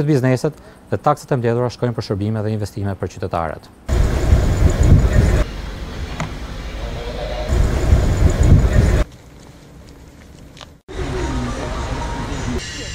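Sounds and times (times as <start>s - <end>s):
deep heavy rumble: 3.9s - 9.0s.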